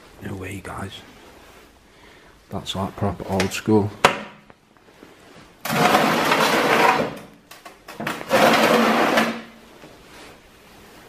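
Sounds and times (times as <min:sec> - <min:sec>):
box scraping on floor: 0:05.7 - 0:07.3, 0:08.1 - 0:09.6.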